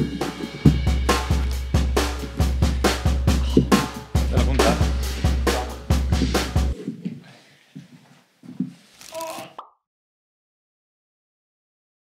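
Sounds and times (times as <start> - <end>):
soft low thuds: 0.0 - 6.8.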